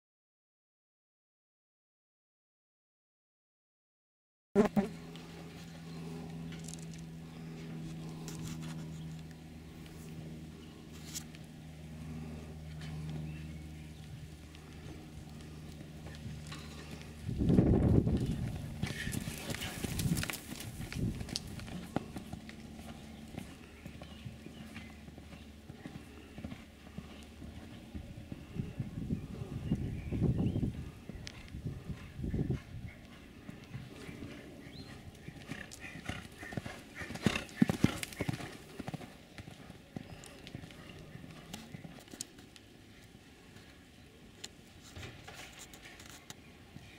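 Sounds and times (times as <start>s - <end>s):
horse hoofbeats on sand: 14.0s - 30.1s, 30.7s - 42.5s.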